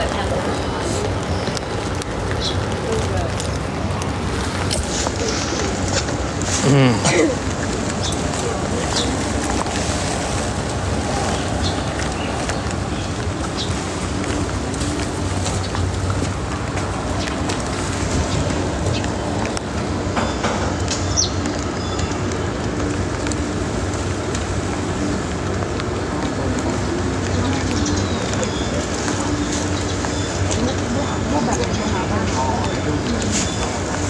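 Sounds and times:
steady rain falling: 0.0 - 34.0.

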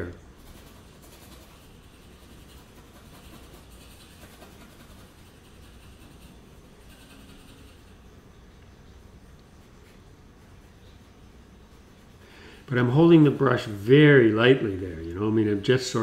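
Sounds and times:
paintbrush scratching on canvas: 0.0 - 8.2, 9.5 - 14.4
low room hum: 0.0 - 16.0.

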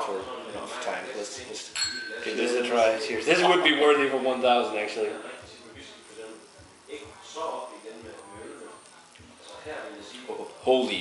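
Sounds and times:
faint background chatter: 0.0 - 11.0.

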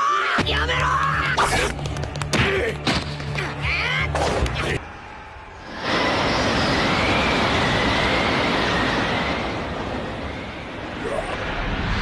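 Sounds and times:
loud rushing roar: 4.9 - 12.0
thin wavering whine: 5.1 - 12.0.

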